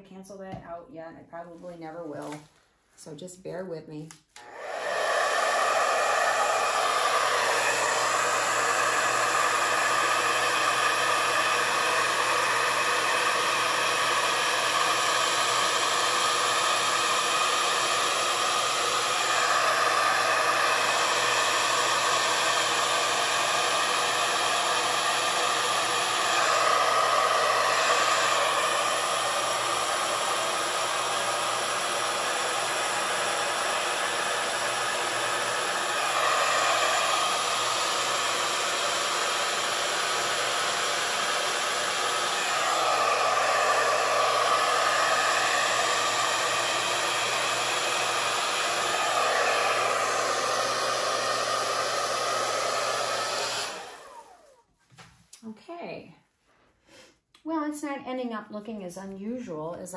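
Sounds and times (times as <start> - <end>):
hair dryer blowing air: 4.3 - 54.7.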